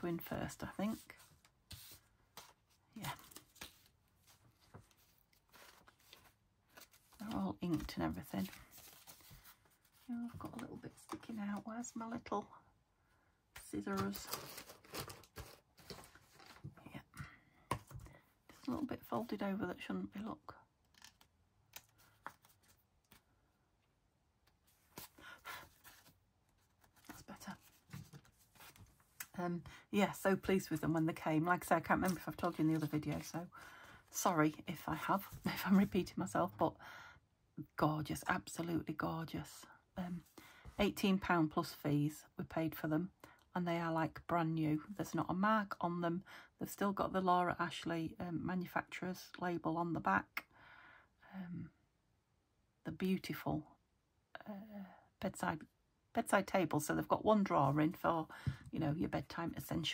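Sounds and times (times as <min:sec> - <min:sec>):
paper rustling: 0:00.9 - 0:11.4, 0:13.8 - 0:16.7, 0:20.9 - 0:23.3, 0:24.6 - 0:29.3, 0:31.6 - 0:33.9
paper rustling and sliding: 0:01.0 - 0:02.6, 0:03.2 - 0:10.0.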